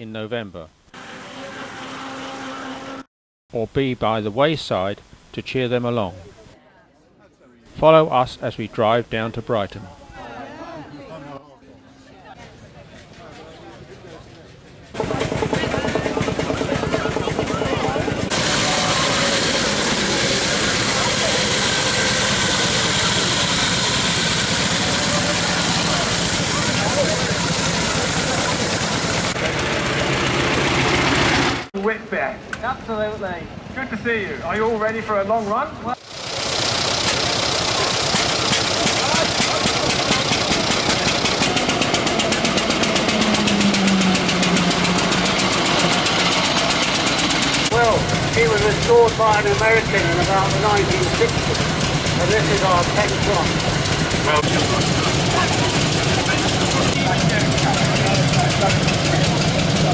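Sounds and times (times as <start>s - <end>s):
outdoor noise: 4.5s - 59.9s
crowd chatter: 6.3s - 7.7s, 9.8s - 30.3s, 37.0s - 59.9s
old car engines running: 14.8s - 31.7s, 36.0s - 59.9s.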